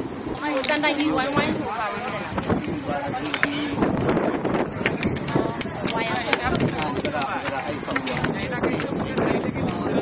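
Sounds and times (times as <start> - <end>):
people talking over one another: 0.0 - 10.0
steady background noise: 0.0 - 10.0.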